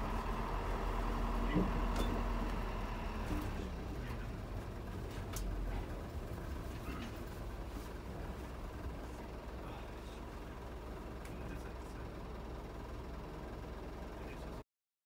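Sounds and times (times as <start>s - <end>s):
diesel engine rumbling: 0.0s - 14.6s.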